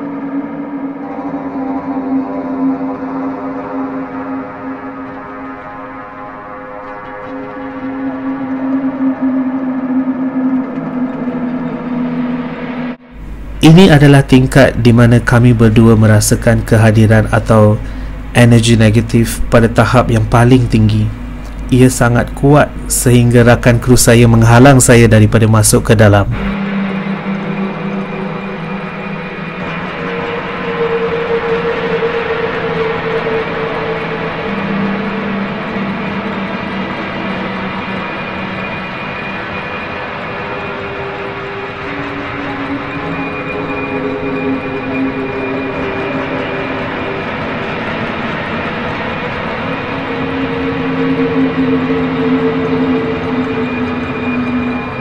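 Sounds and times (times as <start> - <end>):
slow ambient music: 0.0 - 55.0.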